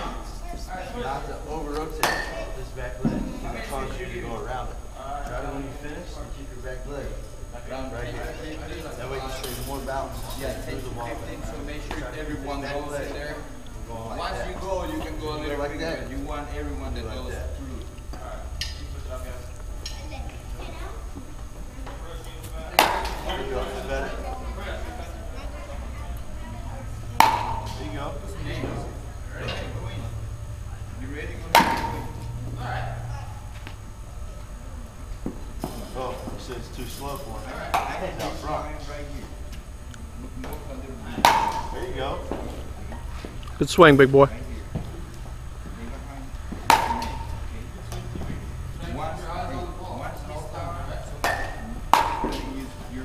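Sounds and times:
bat cracking against ball: 27.2 - 27.9, 31.5 - 32.2, 41.2 - 41.8, 46.5 - 47.4, 51.2 - 52.6
metal bat striking ball: 27.2 - 27.9.

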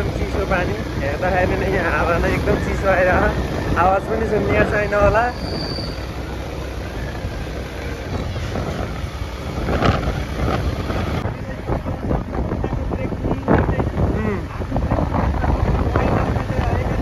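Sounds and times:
motorbike engine rumble: 0.0 - 17.0
wind buffeting microphone: 0.0 - 17.0.

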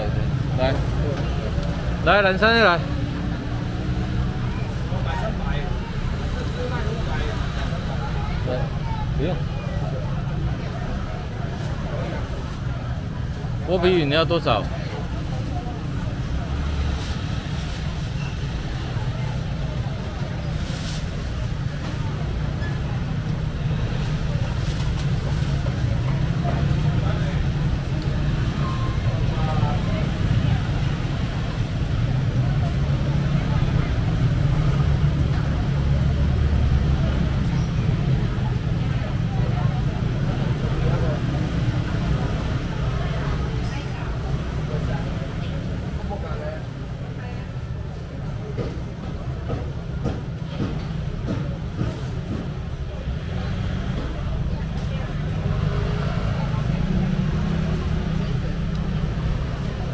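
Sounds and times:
faint indistinct voices: 0.0 - 59.9.

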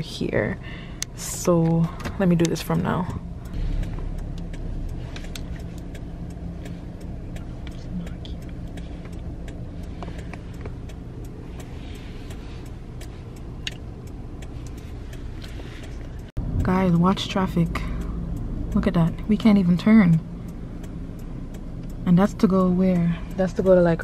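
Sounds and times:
engine and road hum: 0.0 - 24.0.

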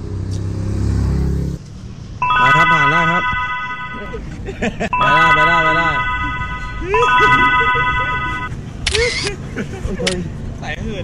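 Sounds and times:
high-pitched chord tone: 2.2 - 4.2, 5.0 - 8.5.

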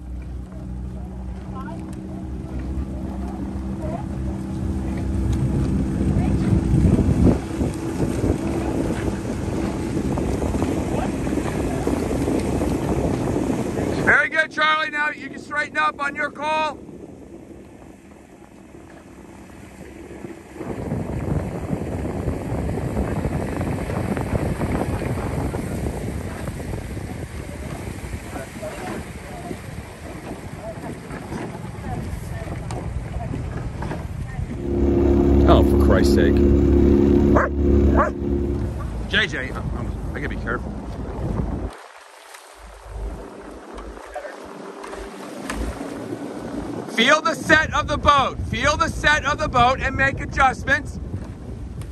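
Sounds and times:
boat motor: 0.0 - 51.9
rushing wind: 1.2 - 51.9.

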